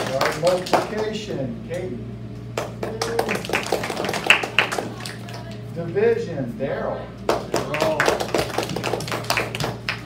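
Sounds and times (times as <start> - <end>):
children clapping: 0.0 - 1.1, 2.5 - 5.6, 7.3 - 10.0.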